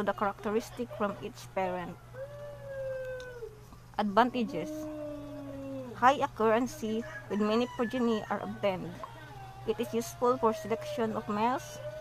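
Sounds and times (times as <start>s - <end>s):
low electrical hum: 0.0s - 12.0s
animal long call: 2.1s - 3.6s, 4.5s - 6.0s.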